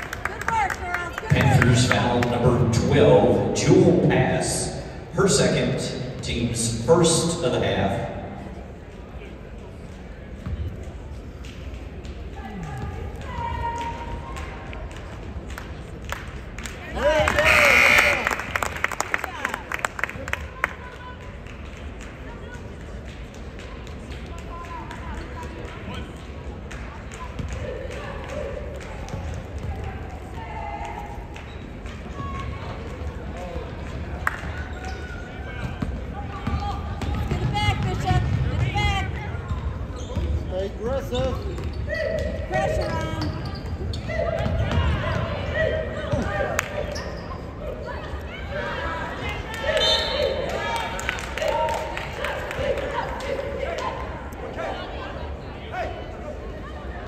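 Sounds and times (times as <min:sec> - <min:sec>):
basketball bouncing on court: 0:10.4 - 0:10.8, 0:34.7 - 0:40.5, 0:41.2 - 0:46.5.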